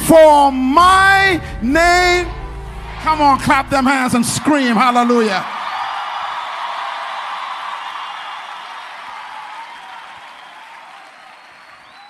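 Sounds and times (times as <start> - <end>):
congregation cheering: 1.7 - 12.0
congregation applauding: 2.9 - 12.0.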